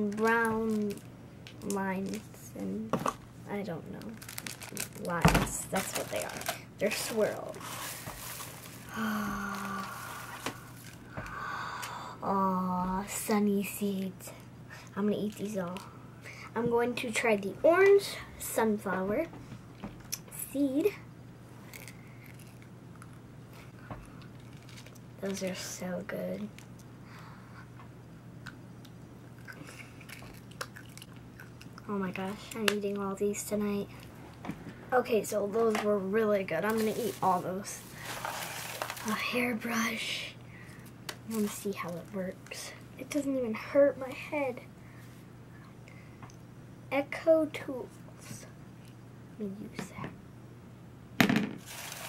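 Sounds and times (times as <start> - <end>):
paper filler rustling and crackling: 4.1 - 8.9, 36.7 - 39.3, 51.6 - 52.0
person chewing crunchy candy: 21.6 - 23.2, 29.2 - 31.9.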